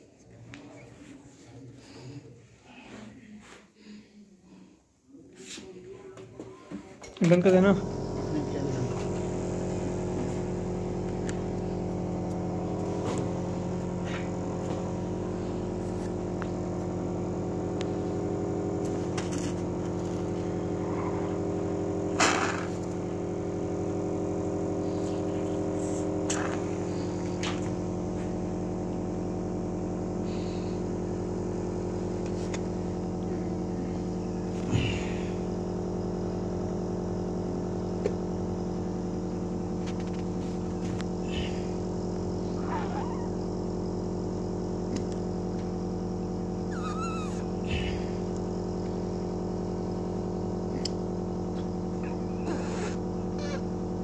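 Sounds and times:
steady machine hum: 6.0 - 54.0.

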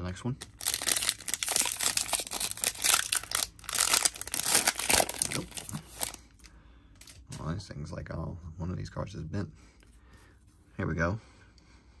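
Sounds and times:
foil wrapper crinkling and tearing: 0.4 - 6.4.

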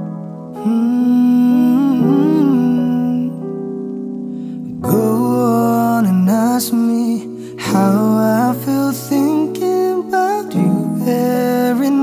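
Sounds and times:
wordless hummed vocal melody: 4.8 - 12.0.

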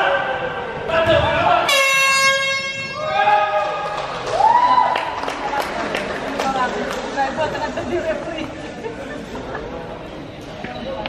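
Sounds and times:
steady horn blast: 1.6 - 3.1.

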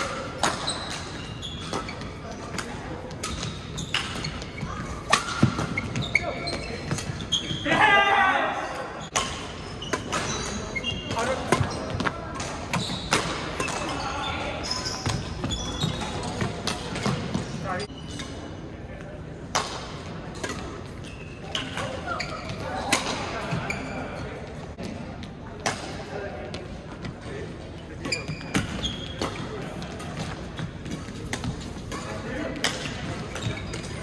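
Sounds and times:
rackets hitting shuttlecock: 0.0 - 7.2, 9.1 - 14.0, 15.0 - 17.5, 19.5 - 20.9, 28.5 - 34.0.

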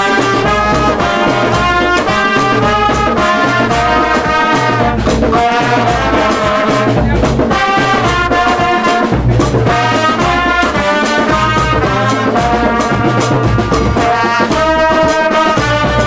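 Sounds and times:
brass band playing: 0.0 - 16.0
steady drum beat: 0.0 - 16.0.

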